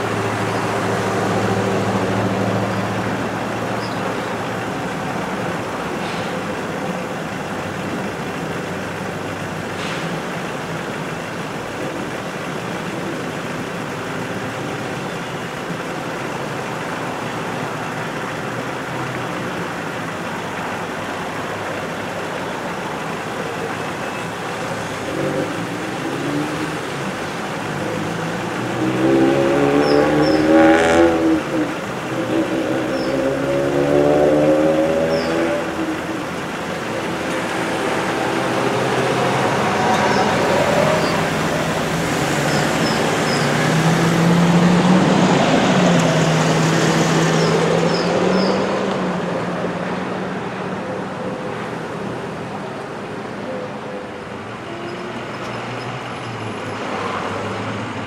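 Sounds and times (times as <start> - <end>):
passing cars hum: 0.0 - 58.0
vehicle engines accelerating: 0.0 - 58.0.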